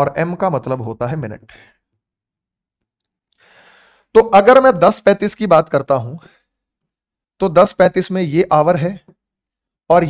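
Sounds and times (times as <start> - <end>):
man breathing in: 3.3 - 4.1.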